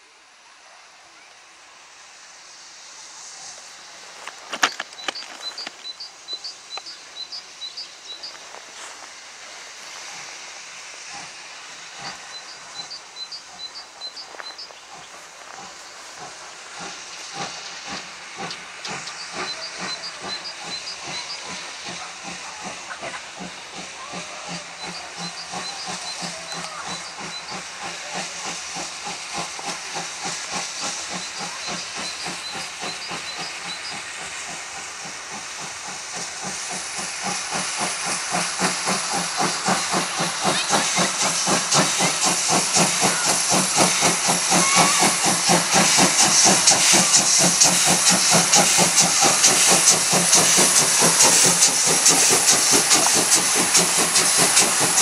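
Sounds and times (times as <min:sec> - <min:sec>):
steam hissing: 0:00.0 - 0:55.0
steam locomotive chuffing: 0:00.0 - 0:55.0.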